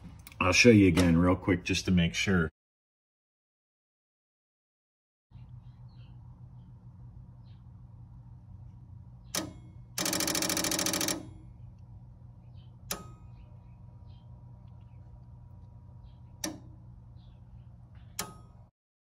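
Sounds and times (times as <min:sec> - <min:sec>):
low electrical hum: 0:00.0 - 0:02.5, 0:05.3 - 0:18.7
relays clicking: 0:16.4 - 0:16.8, 0:18.0 - 0:18.7.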